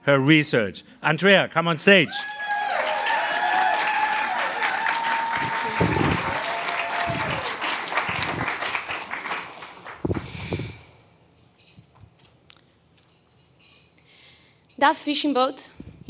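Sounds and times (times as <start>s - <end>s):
audience cheering: 2.1s - 10.0s
audience clapping: 2.4s - 10.7s.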